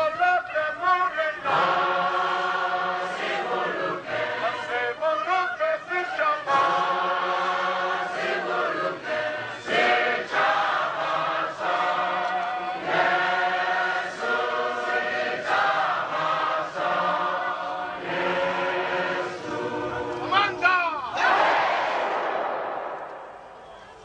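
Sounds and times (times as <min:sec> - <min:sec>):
choir singing: 0:00.5 - 0:20.6, 0:21.2 - 0:23.0.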